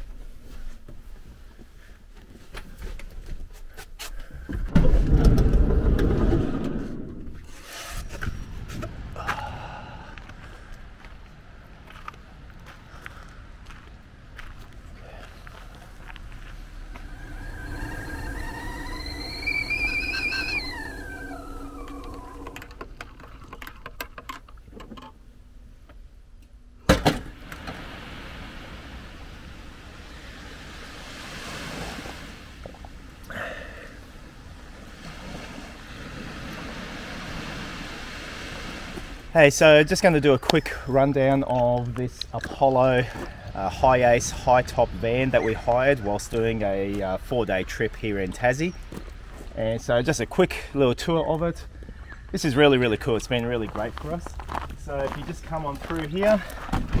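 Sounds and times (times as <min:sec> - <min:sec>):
loud rush of noise: 0:16.4 - 0:22.6
kettle whistling: 0:16.9 - 0:22.7.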